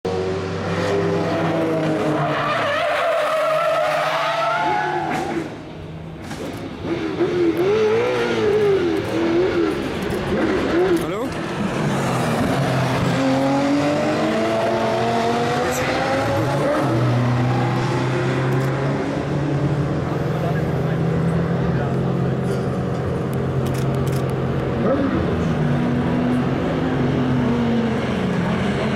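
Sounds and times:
race car engines revving: 0.1 - 28.9
tyres skidding: 0.6 - 28.9.

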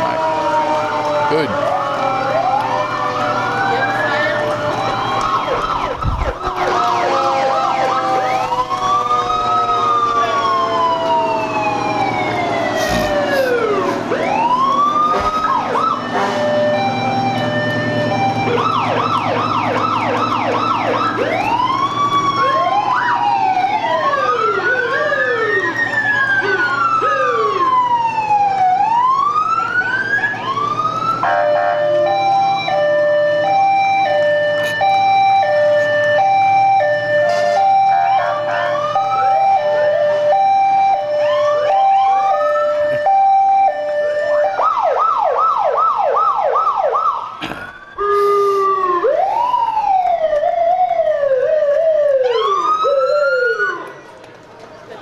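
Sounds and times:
two-tone hi-lo siren: 0.0 - 53.9
sirens wailing and yelping: 0.0 - 54.1
low engines running: 0.0 - 55.0.

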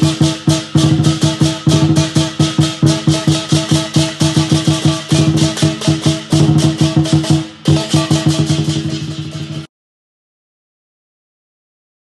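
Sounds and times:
cymbals clashing: 0.0 - 9.7
drum beating fast rhythm: 0.0 - 9.7.

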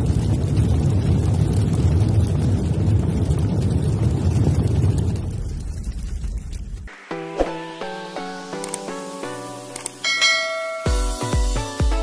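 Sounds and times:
music: 6.9 - 12.0
notification bell ding: 10.0 - 11.3
electronic kick drum: 10.8 - 12.0.

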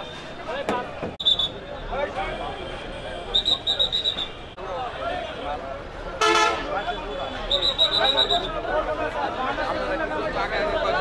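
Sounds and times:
street crowd chatter: 0.0 - 11.0
vehicle horn toot: 6.2 - 8.2.

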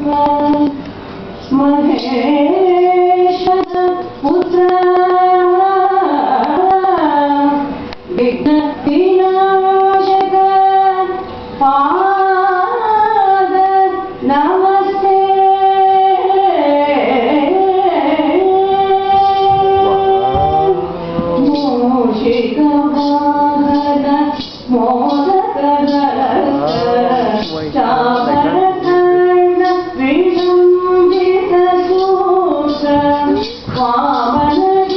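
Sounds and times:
woman singing: 0.0 - 34.9
steady drone: 14.5 - 34.9
woman singing held notes: 18.6 - 24.0.

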